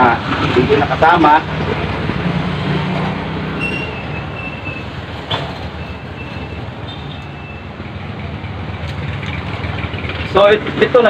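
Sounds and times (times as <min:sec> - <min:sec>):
noisy background: 0:00.0 - 0:11.0.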